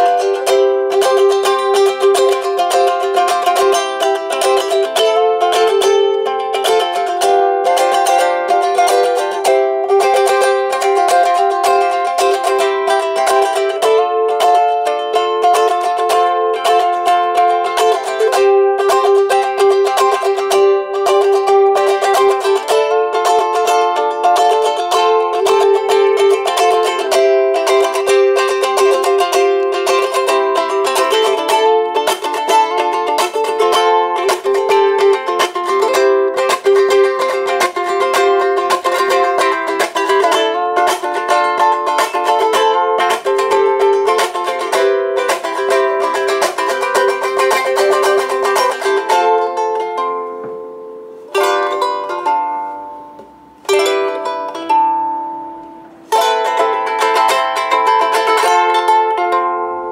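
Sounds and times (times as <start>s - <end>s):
ukulele strumming chords: 0.0s - 59.9s.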